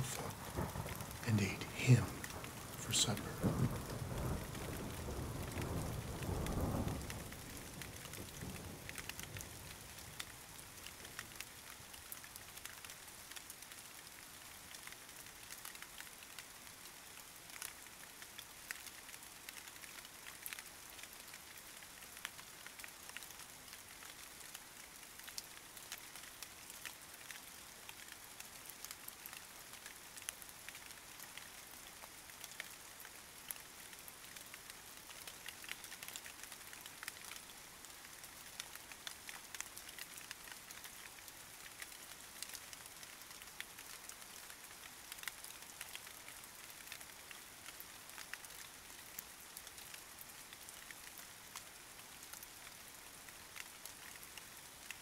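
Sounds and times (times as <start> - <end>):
thunder rumble: 0.0 - 7.0
steady rain: 0.0 - 55.0.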